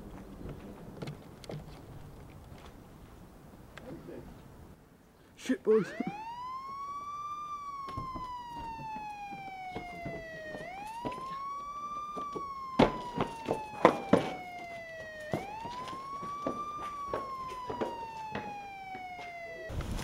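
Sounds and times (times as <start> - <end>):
siren wailing: 5.6 - 20.0
sharp knocks: 12.1 - 14.7.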